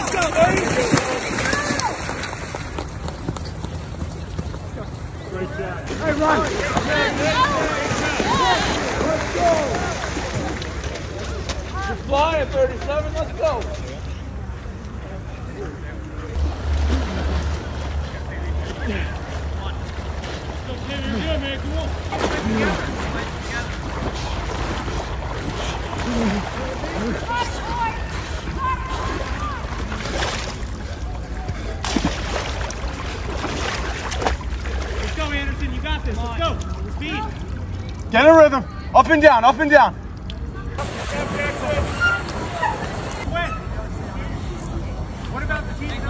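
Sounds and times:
muddy water sloshing: 0.0s - 13.0s, 16.3s - 39.0s, 39.9s - 43.3s
distant shouts: 5.9s - 10.9s, 24.0s - 30.2s.

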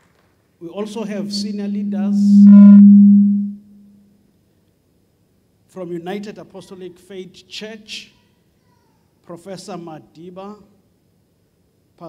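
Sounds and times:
loud low feedback hum: 0.8s - 4.0s.

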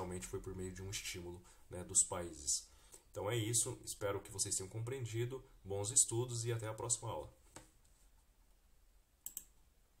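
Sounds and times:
computer mouse clicks: 9.2s - 9.6s.

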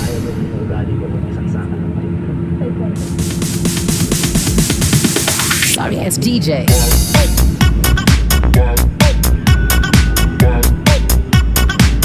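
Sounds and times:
vehicle cabin rumble: 0.0s - 12.0s.

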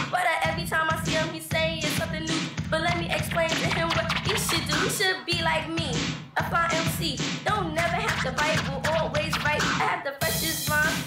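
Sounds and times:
rapping over a hip-hop beat: 0.0s - 11.0s.

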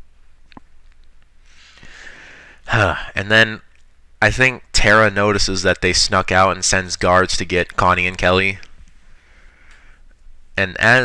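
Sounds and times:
soft breath drawn in: 1.4s - 2.6s, 9.0s - 10.1s.

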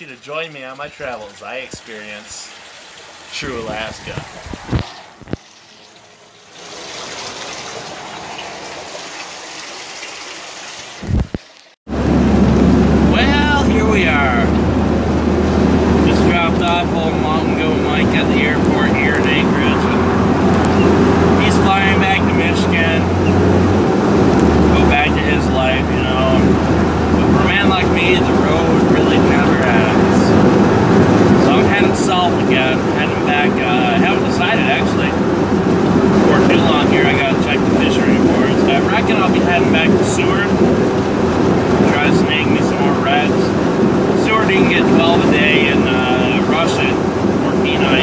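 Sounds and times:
vehicle engine humming: 11.9s - 48.0s.

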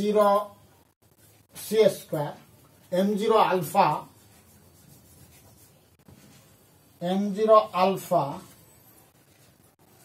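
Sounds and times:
chalk scratching on blackboard: 2.6s - 6.7s.

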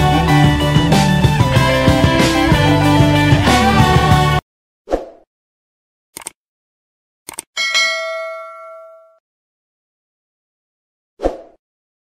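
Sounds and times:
notification bell ding: 7.6s - 9.2s.

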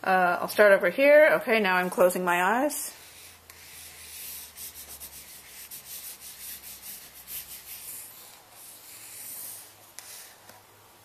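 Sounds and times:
pen scribbling on paper: 3.0s - 10.3s.

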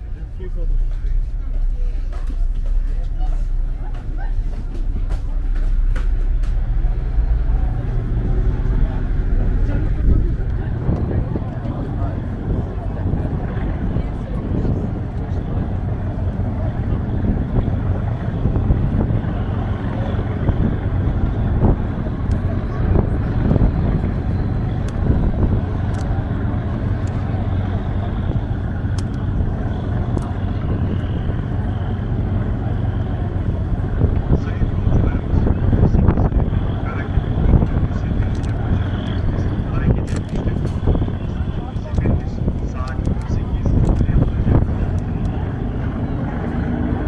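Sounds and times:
ferry diesel engine drone: 0.0s - 47.0s
passenger chatter: 0.0s - 47.0s.

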